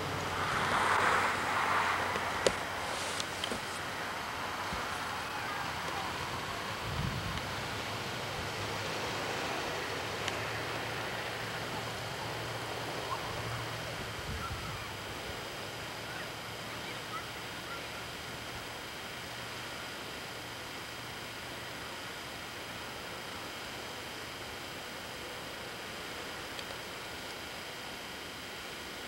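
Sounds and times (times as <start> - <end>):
steady hiss: 0.0 - 29.0.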